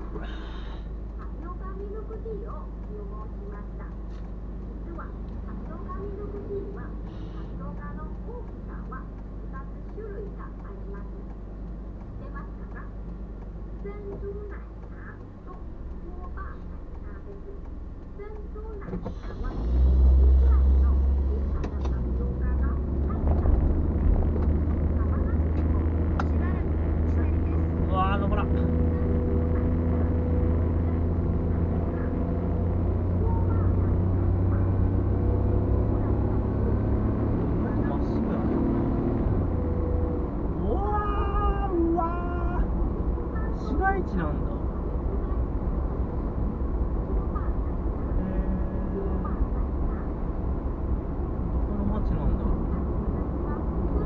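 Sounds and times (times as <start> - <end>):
car engine and road noise: 0.0 - 54.0.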